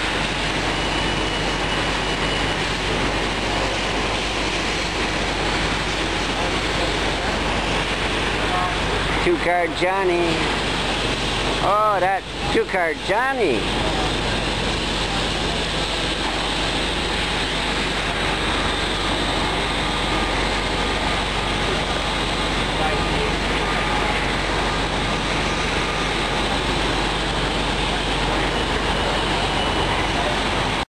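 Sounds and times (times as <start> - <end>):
faint passenger voices: 6.2 - 10.9, 11.6 - 30.8.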